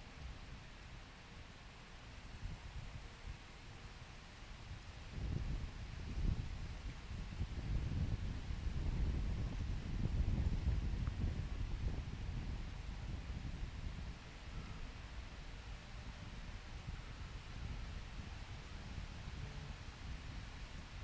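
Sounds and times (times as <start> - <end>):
wind buffeting microphone: 4.8 - 21.0.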